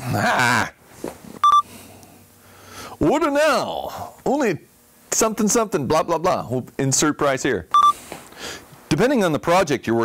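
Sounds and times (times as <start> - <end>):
electronic beep: 1.4 - 1.6, 7.8 - 8.0.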